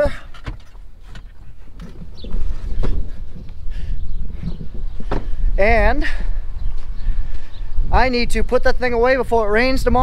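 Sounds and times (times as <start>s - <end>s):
wind buffeting microphone: 0.0s - 10.0s
truck door knocks and clicks: 5.1s - 5.3s.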